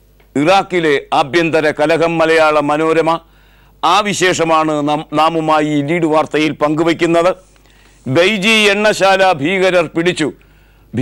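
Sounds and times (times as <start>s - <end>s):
man speaking: 0.4s - 11.0s.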